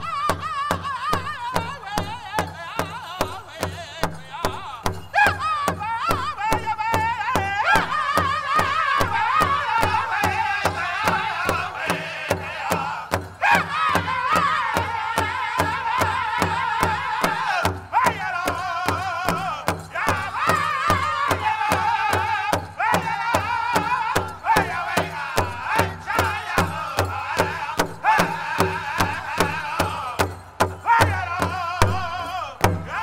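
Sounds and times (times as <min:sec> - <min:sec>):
large drum beating: 0:00.0 - 0:33.0
men singing in high voices: 0:00.0 - 0:33.0.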